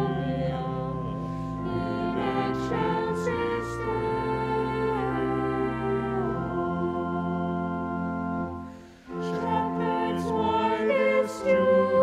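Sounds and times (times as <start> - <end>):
vocal ensemble singing a carol: 0.0 - 12.0.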